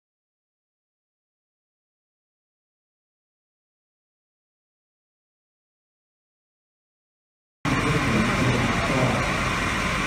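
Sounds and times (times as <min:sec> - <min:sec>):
street noise: 0:07.7 - 0:10.0
truck engine humming: 0:07.7 - 0:10.0.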